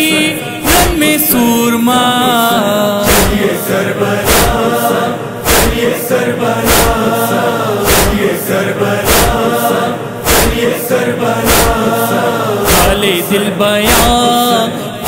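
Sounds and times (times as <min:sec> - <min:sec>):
chorus chanting a lament: 0:00.0 - 0:15.0
heavy rhythmic thumps: 0:00.6 - 0:01.4, 0:03.0 - 0:13.2, 0:13.8 - 0:14.7.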